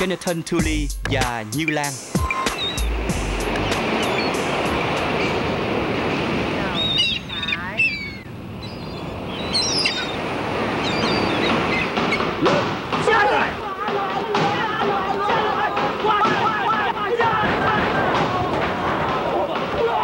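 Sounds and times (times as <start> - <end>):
ocean surf washing on beach: 2.4 - 20.0.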